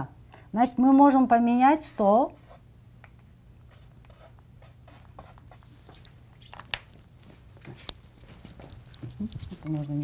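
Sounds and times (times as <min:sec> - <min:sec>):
chalk scratching on blackboard: 0:03.7 - 0:06.0.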